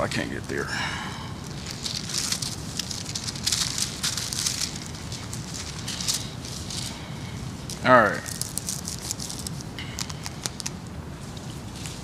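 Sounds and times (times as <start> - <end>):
thin pages rustling: 1.5 - 7.0, 7.6 - 12.0.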